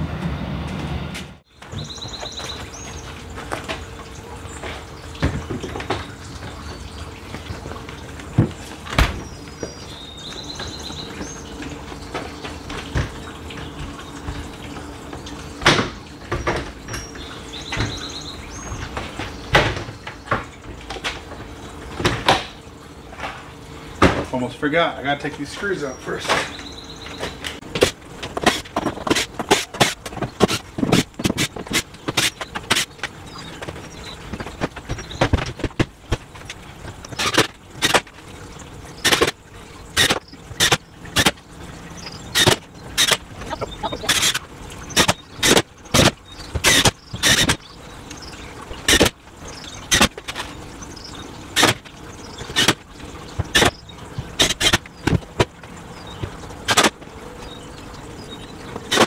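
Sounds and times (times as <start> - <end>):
sharp knocks and clicks: 27.2 - 38.2, 51.6 - 57.1.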